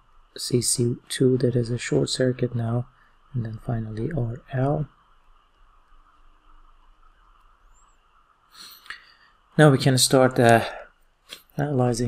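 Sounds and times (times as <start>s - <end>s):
faint room hiss: 0.0s - 12.0s
intake of breath: 8.5s - 9.5s
mouth click: 8.6s - 9.1s, 11.3s - 11.6s.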